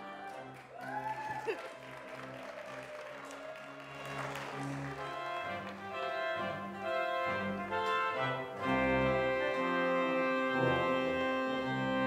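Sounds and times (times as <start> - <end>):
organ playing held chords: 0.0 - 0.6, 3.9 - 12.0.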